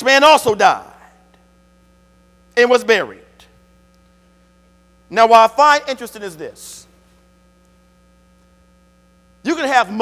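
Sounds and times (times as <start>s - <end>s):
electrical mains hum: 0.0s - 10.0s
man speaking: 2.6s - 3.5s, 5.1s - 7.0s, 9.4s - 10.0s.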